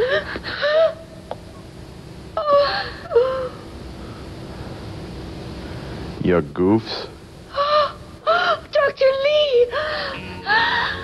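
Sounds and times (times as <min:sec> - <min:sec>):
person gasping and whimpering: 0:09.7 - 0:11.0.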